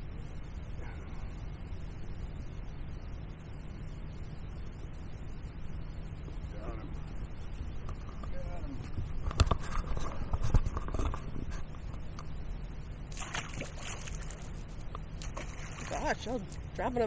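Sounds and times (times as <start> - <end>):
fish splashing into water: 13.1 - 16.7.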